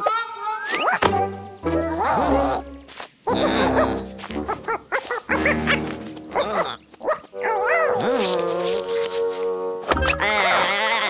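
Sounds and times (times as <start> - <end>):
background music: 0.9 - 11.0
cartoon character vocal sounds: 3.3 - 4.0.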